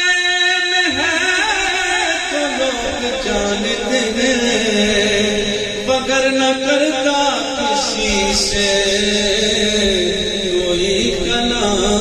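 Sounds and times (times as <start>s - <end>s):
man chanting devotional verse: 0.0s - 12.0s.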